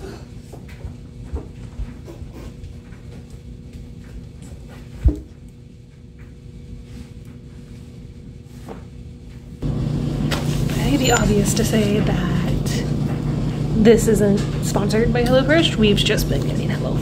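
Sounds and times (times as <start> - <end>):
low hum: 5.3 - 17.0.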